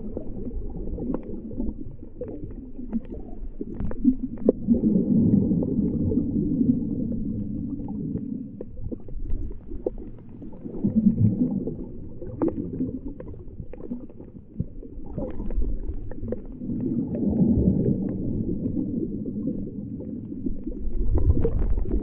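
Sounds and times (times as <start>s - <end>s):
underwater rumbling wash of water: 0.0s - 22.0s.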